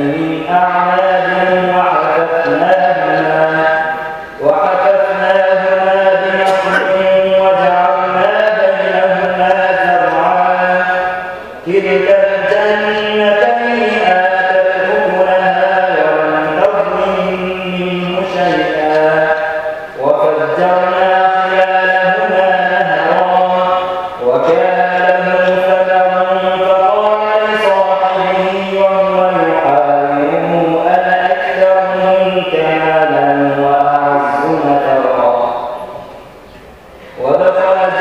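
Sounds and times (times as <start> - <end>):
man chanting melodically: 0.0 - 38.0.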